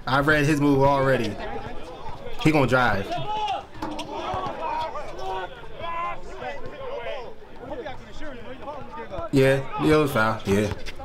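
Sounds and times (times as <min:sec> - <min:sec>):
men talking: 0:00.1 - 0:11.0.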